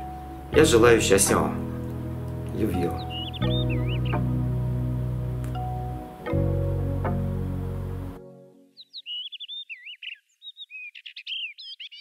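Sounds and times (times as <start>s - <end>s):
songbird singing: 0.0s - 8.0s, 8.6s - 12.0s
background music: 0.0s - 8.8s.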